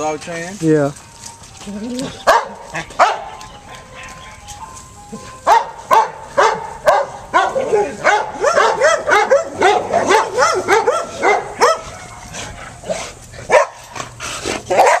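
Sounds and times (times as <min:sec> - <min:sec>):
dog barking: 0:02.2 - 0:03.4, 0:05.4 - 0:12.3, 0:13.5 - 0:13.8, 0:14.7 - 0:15.0.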